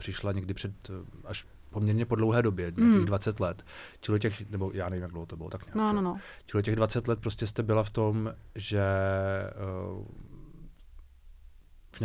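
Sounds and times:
man saying uh: 0:02.7 - 0:03.3, 0:08.6 - 0:10.2.

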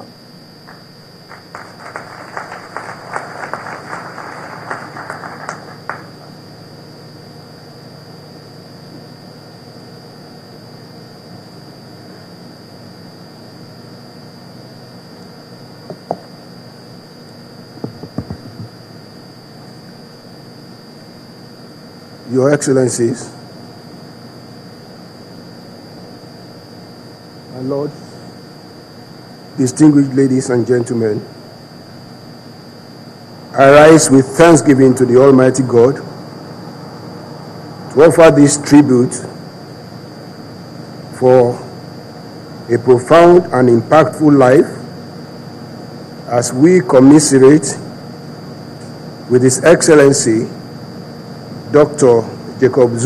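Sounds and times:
high-pitched whine: 0:00.0 - 0:53.0
room tone hiss: 0:00.0 - 0:53.0
audience applauding: 0:00.7 - 0:06.3
low hum: 0:31.4 - 0:41.2.

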